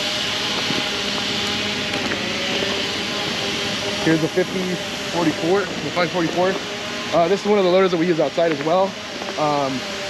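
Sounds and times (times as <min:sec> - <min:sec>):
faint hum: 0:00.0 - 0:10.0
mechanical drone with hiss: 0:00.0 - 0:10.0.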